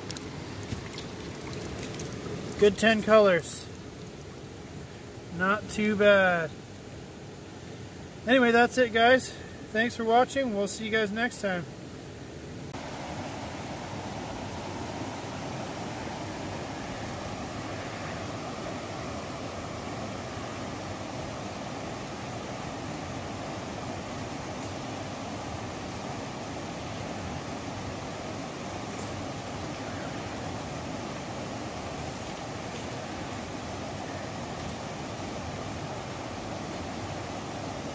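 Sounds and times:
river flowing over rocks: 0:00.0 - 0:05.3, 0:11.8 - 0:37.9.

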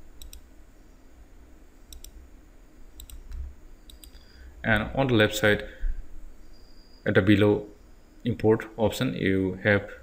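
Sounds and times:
faint low hum: 0:00.0 - 0:10.0
computer mouse clicking: 0:00.2 - 0:00.5, 0:01.9 - 0:02.2, 0:03.0 - 0:04.2.

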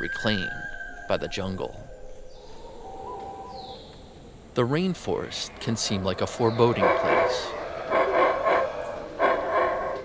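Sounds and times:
howler monkey roaring: 0:05.5 - 0:10.0.

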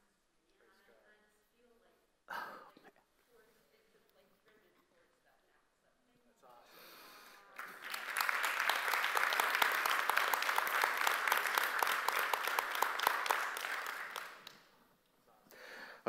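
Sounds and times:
audience applauding: 0:07.5 - 0:14.7.

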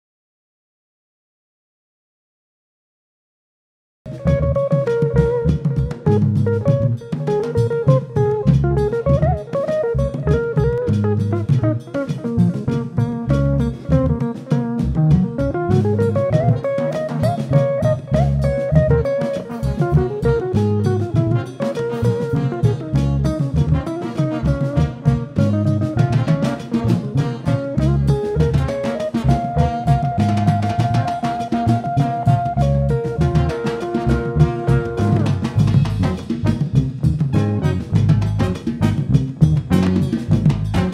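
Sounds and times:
drum kit: 0:04.1 - 0:40.9
electric guitar melody: 0:04.1 - 0:40.9
hand drums: 0:04.1 - 0:40.9.

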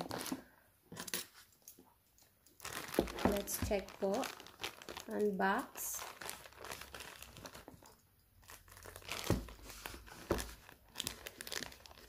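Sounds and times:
plastic mailer bag crinkling: 0:00.0 - 0:01.4, 0:02.6 - 0:12.0.

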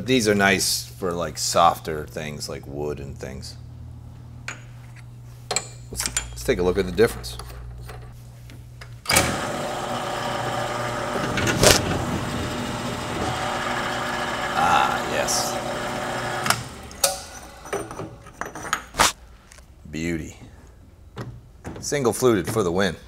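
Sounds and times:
drill press motor running: 0:09.1 - 0:17.1.

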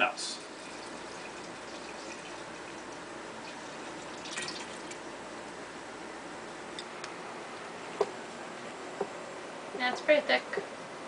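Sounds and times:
juice pouring into glass jar: 0:00.3 - 0:05.1.

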